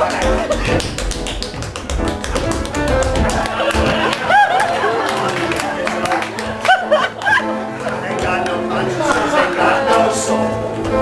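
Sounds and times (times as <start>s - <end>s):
quick dance foot taps: 0.0s - 4.2s.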